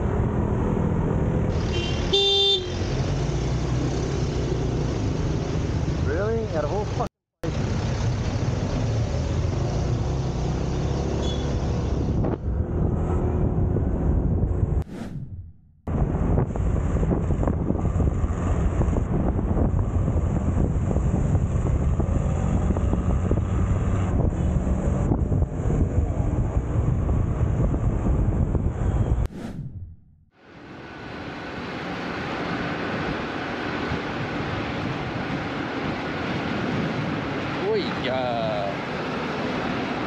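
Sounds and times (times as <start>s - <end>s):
passing vehicles: 0.0s - 15.2s, 15.9s - 29.7s, 30.4s - 40.0s
wind buffeting microphone: 12.0s - 29.8s.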